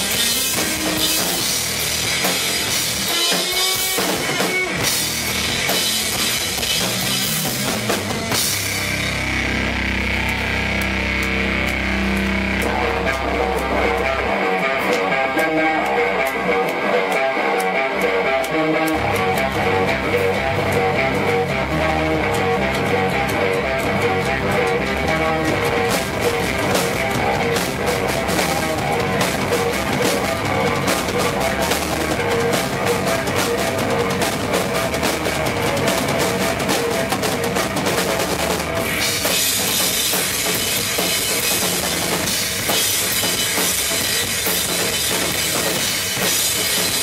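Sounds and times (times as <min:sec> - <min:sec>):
cymbal-heavy drumming: 0:00.0 - 0:47.0
instrumental rock band: 0:00.0 - 0:47.0.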